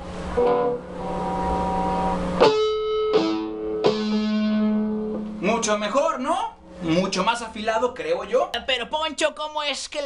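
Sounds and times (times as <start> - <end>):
electric guitar notes ringing: 0.0 - 5.7.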